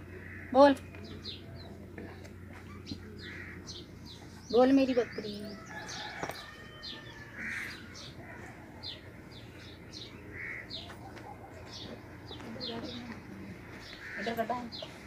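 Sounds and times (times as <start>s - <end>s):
birds chirping: 0.0s - 15.0s.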